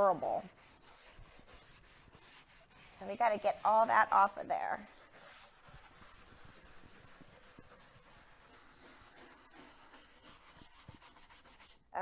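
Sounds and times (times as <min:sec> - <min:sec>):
hand tool scratching wood: 0:00.0 - 0:11.8.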